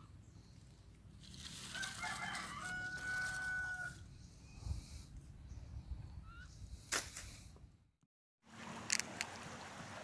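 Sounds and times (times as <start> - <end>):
dry leaves rustling: 1.1 - 4.0
rooster crowing: 1.7 - 4.0.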